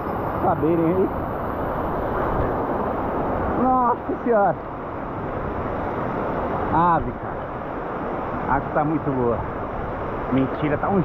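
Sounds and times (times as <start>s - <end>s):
waterfall rushing into pool: 0.0s - 11.0s.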